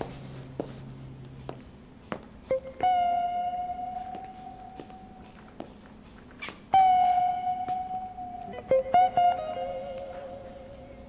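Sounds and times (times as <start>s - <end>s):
guitar notes: 2.4s - 11.0s.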